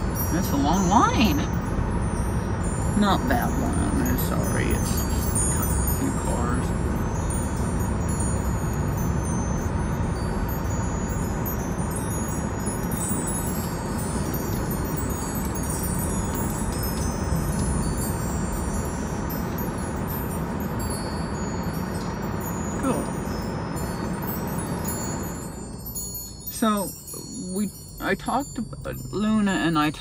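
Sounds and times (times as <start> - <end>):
car cabin rumble: 0.0 - 30.0
small metal chimes tinkling: 0.0 - 30.0.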